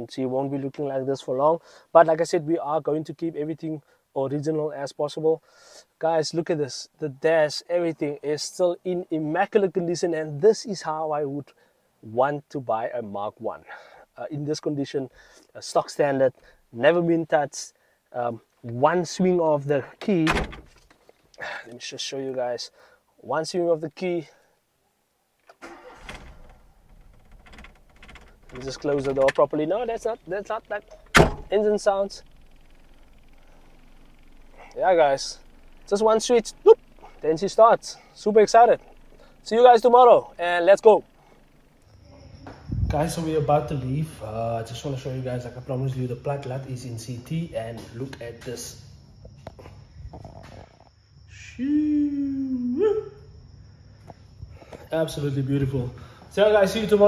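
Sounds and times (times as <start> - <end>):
car engine starting and running: 25.4 - 42.0
wordless voice-like hum: 51.3 - 53.3.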